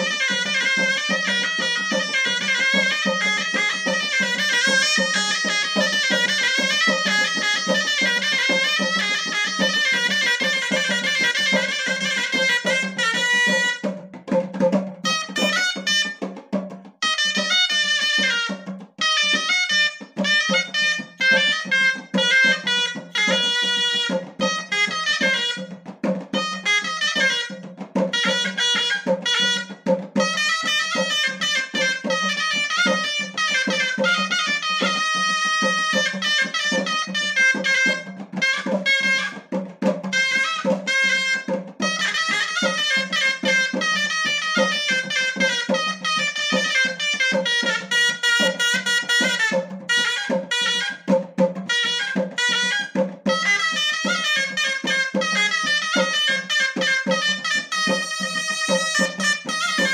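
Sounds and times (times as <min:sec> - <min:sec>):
shawm playing fast melody: 0:00.0 - 0:59.9.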